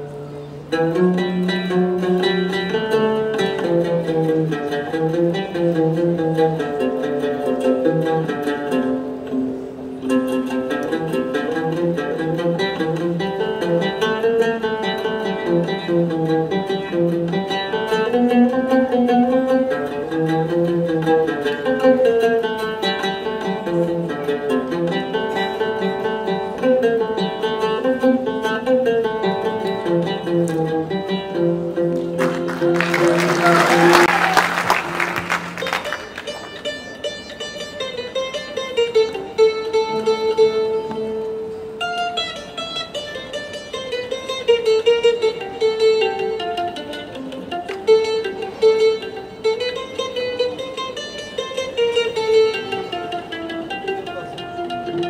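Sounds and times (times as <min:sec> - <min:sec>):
plucked lutes playing melody: 0:00.0 - 0:55.0.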